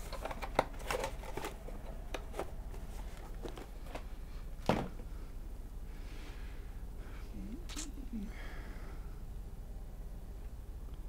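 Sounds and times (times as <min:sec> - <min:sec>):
cardboard rustling: 0:00.0 - 0:04.1.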